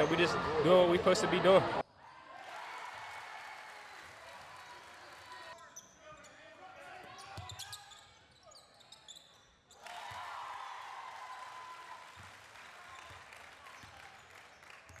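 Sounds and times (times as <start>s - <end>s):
crowd noise: 0.0s - 5.6s
shoe squeaks on court: 7.2s - 9.8s.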